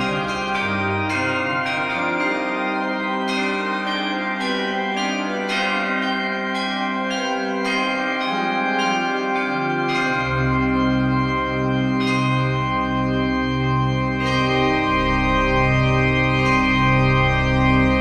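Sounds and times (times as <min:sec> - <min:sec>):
organ music: 0:00.0 - 0:06.2, 0:07.0 - 0:18.0
bell-like struck notes: 0:00.0 - 0:13.0.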